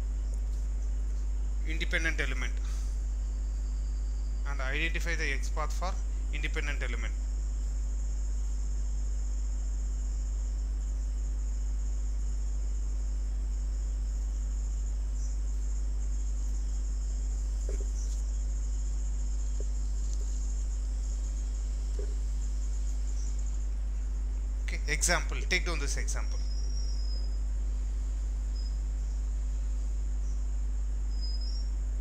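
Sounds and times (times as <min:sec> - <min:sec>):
low electrical hum: 0:00.0 - 0:32.0
faint ticks: 0:00.3 - 0:01.3, 0:19.3 - 0:20.5.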